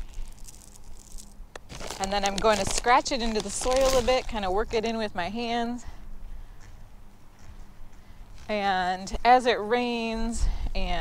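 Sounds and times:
rustling of granular bag: 0.0 - 5.0.

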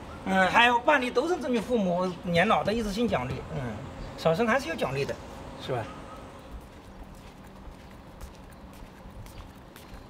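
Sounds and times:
faint steady hum: 0.0 - 10.0
footsteps on stone paving: 6.4 - 10.0.

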